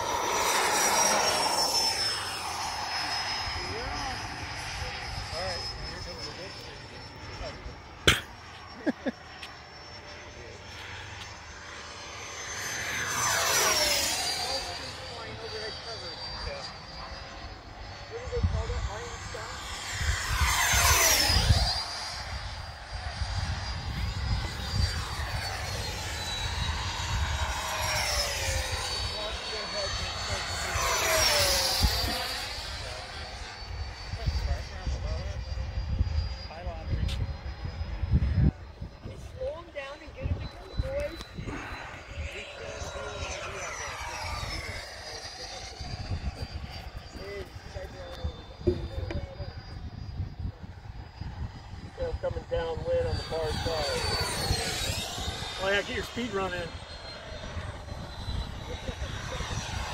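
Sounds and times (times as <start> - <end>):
electric jet fan whine: 0.0 - 59.9
wind rumbling on microphone: 18.1 - 33.0, 33.7 - 59.9.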